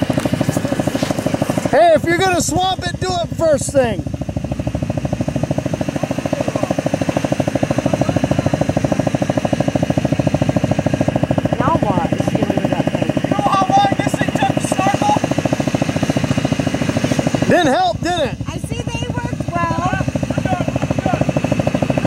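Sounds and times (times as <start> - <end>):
engine idling: 0.0 - 22.0.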